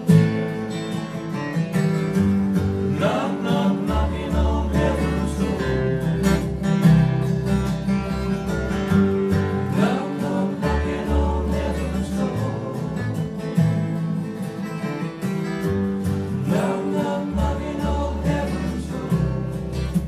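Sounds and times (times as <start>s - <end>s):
acoustic guitars picked and strummed: 0.0s - 20.0s
upright bass notes: 0.0s - 20.0s.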